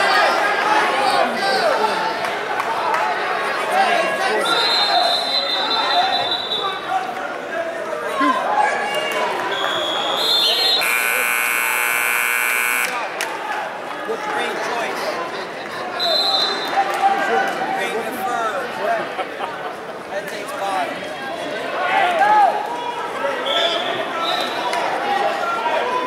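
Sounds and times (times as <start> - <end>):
crowd chatter: 0.0 - 26.0
scoreboard buzzer: 10.8 - 13.1.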